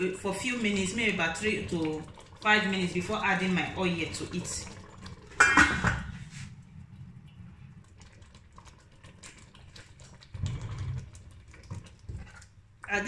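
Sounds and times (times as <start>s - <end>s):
low steady rumble: 0.7s - 8.8s.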